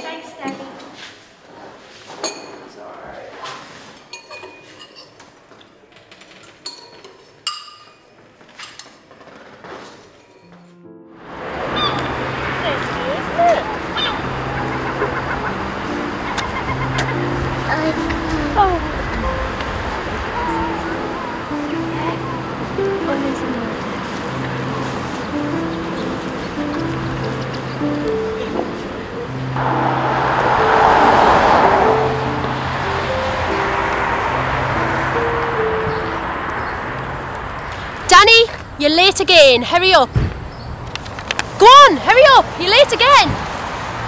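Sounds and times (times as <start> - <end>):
slow background music: 10.2 - 37.8
passing road traffic: 10.5 - 44.0.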